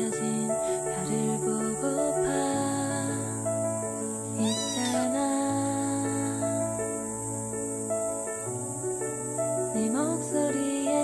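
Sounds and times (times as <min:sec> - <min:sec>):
soft music: 0:00.0 - 0:11.0
kitten meowing: 0:04.4 - 0:05.2.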